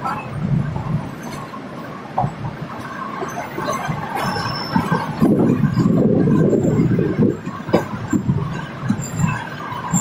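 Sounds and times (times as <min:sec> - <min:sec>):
train rumbling on rails: 0:00.0 - 0:10.0.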